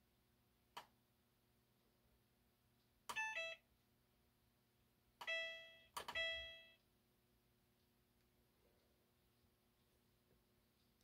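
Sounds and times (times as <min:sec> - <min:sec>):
washer control panel beeping: 0:05.2 - 0:06.8.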